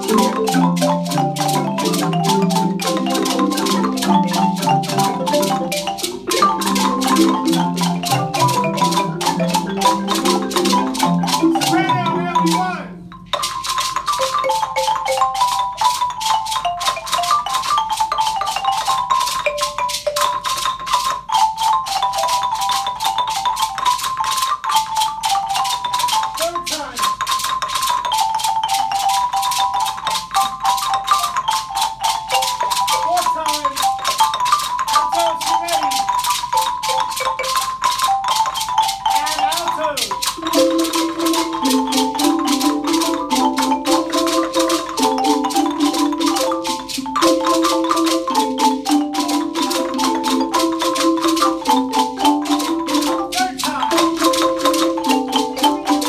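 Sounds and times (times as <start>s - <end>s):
low marimba parts: 0.0s - 56.0s
xylophones and marimbas playing: 0.0s - 56.0s.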